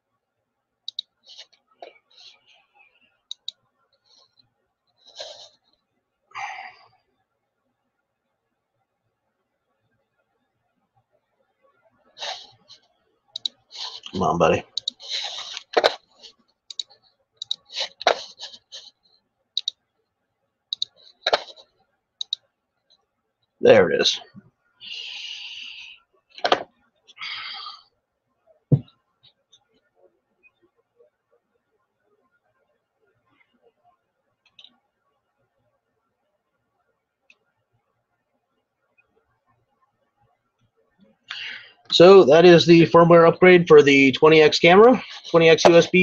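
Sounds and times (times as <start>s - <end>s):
faint soft noises: 0.8s - 46.0s
mouse and keyboard clicks: 0.9s - 2.0s, 3.3s - 3.6s, 14.8s - 15.0s, 16.7s - 18.2s, 19.6s - 19.8s, 20.7s - 21.6s, 22.2s - 22.4s.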